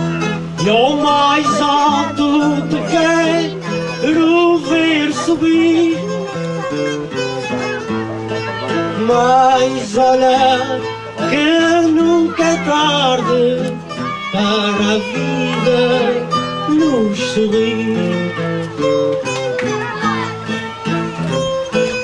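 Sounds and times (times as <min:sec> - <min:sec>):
plucked acoustic guitars: 0:00.0 - 0:22.0.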